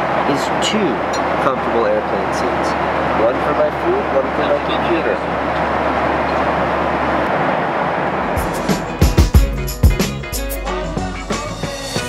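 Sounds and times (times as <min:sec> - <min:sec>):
airliner cabin engine rush: 0:00.0 - 0:10.1
low hum: 0:00.0 - 0:10.5.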